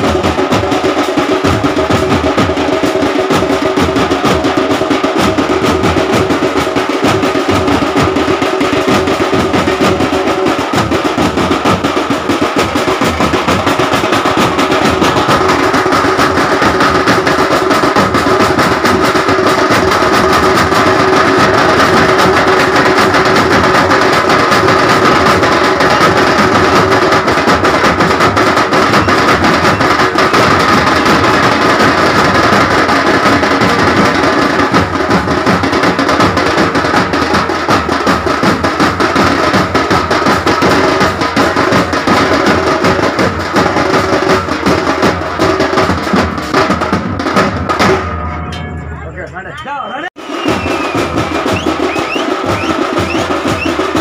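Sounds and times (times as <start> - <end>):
loud fast drumming: 0.0 - 54.0
steady held note: 48.0 - 49.7.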